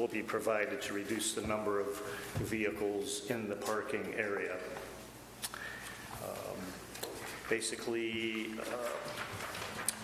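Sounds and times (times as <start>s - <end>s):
man saying um: 6.2s - 6.8s.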